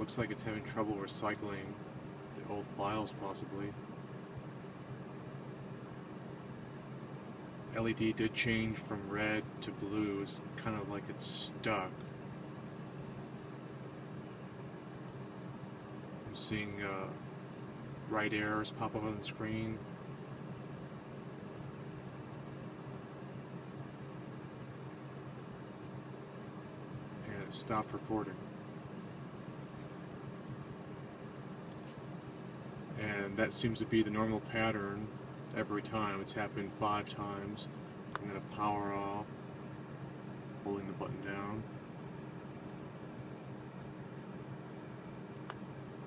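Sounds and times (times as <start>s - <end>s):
low hum and hiss in car cabin: 0.0s - 46.0s
ventilation fan blowing: 0.0s - 46.0s.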